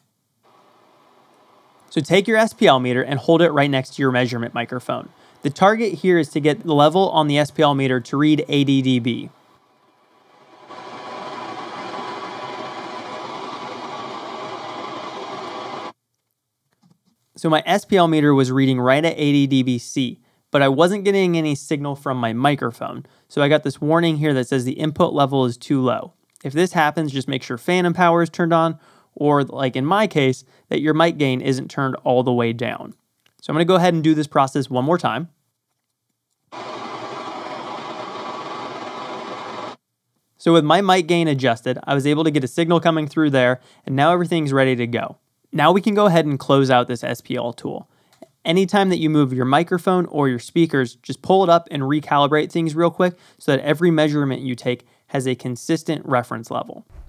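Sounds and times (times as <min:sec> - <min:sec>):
steady noise hiss from loudspeaker: 0:00.0 - 0:09.6.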